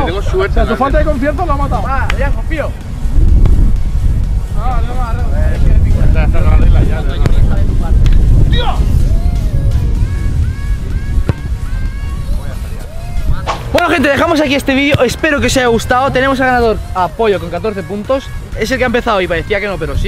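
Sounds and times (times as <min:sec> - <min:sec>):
background music: 0:00.0 - 0:20.0
wind buffeting microphone: 0:00.0 - 0:20.0
sharp knock: 0:13.4 - 0:13.8.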